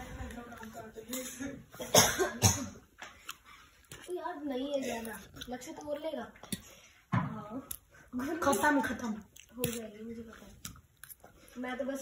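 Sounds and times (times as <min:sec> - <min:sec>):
person coughing: 0:01.8 - 0:02.8.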